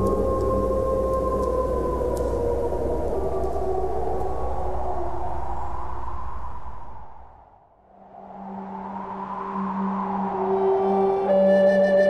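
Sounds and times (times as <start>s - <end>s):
wolves howling: 0.0s - 6.0s
low ambient drone: 0.0s - 12.0s.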